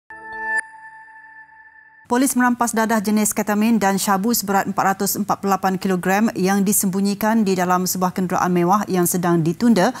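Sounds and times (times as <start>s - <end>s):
high ringing tone: 0.1s - 2.1s
synth chord: 0.1s - 2.1s.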